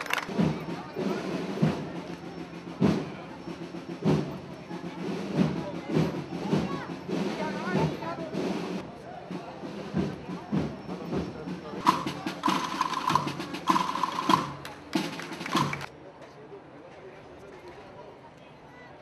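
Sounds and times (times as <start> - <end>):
drum beats: 0.0 - 15.9
crowd voices: 0.0 - 19.0
procession band playing: 10.9 - 15.9.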